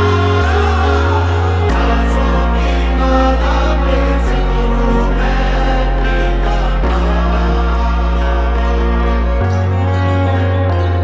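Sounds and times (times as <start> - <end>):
held low chords: 0.0 - 11.0
voices singing: 0.0 - 11.0.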